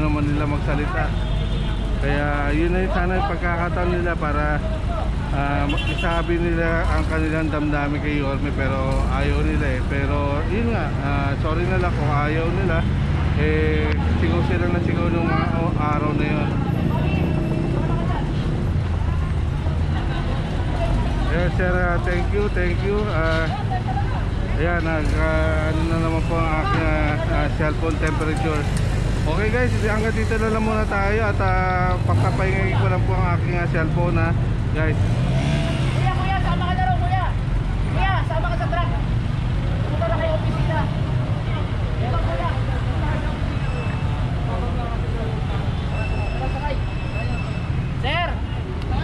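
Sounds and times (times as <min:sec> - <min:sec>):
people talking: 0:00.0 - 0:01.2, 0:02.0 - 0:18.4, 0:19.0 - 0:35.0
diesel truck engine rumbling: 0:00.0 - 0:49.0
chatter of voices: 0:06.6 - 0:39.2.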